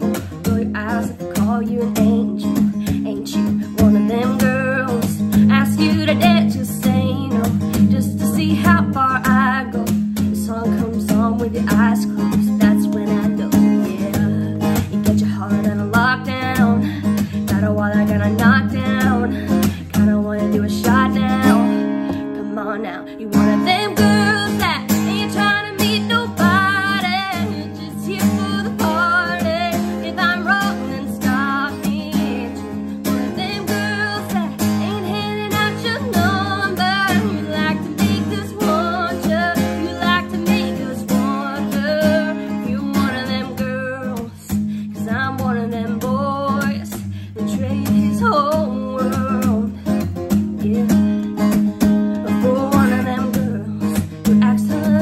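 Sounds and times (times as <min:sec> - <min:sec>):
strummed acoustic guitar: 0:00.0 - 0:55.0
woman singing country ballad: 0:00.0 - 0:55.0.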